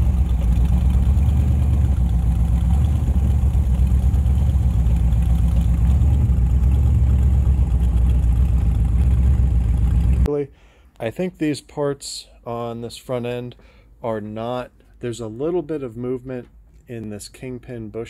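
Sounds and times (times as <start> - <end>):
loud steady engine exhaust: 0.0 - 10.3.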